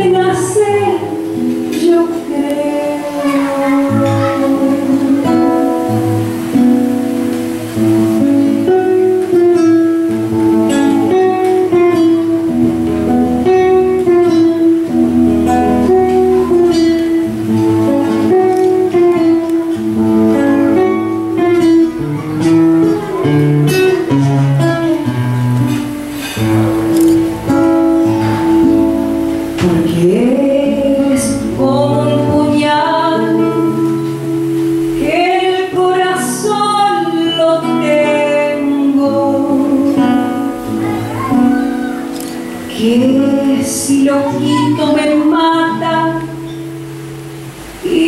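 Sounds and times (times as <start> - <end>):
woman singing: 0.0 - 6.7, 29.5 - 40.8, 42.0 - 48.0
acoustic guitar plucked notes: 0.0 - 48.0.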